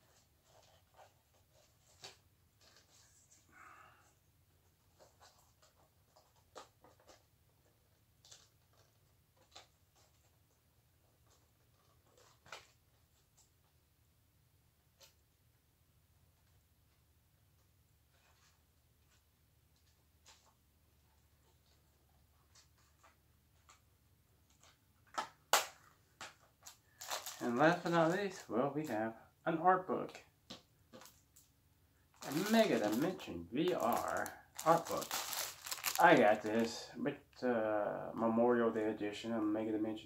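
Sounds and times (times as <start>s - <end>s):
plastic case rustles and clicks: 33.7s - 36.5s.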